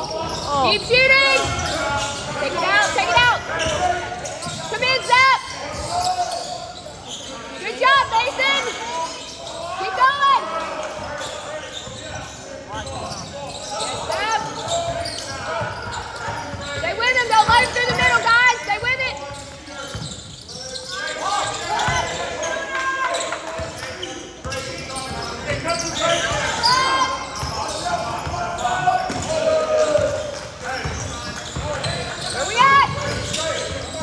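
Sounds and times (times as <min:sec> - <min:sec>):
shouts echoing: 0:00.0 - 0:34.0
sneakers squeaking: 0:00.0 - 0:34.0.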